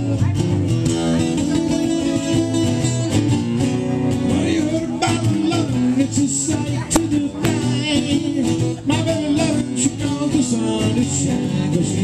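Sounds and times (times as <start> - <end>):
acoustic guitars blues shuffle: 0.0 - 12.0.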